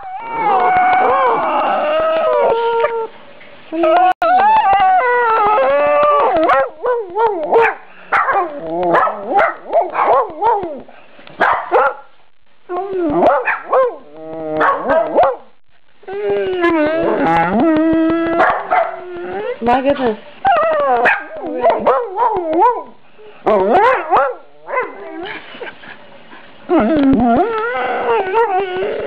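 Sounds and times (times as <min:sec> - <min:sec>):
dog howling and whining: 0:00.0 - 0:10.9, 0:12.7 - 0:15.4, 0:16.0 - 0:25.4, 0:26.7 - 0:29.0.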